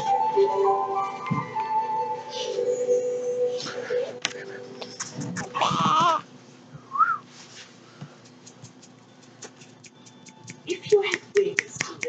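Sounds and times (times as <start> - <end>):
baby squealing: 5.4 - 6.2.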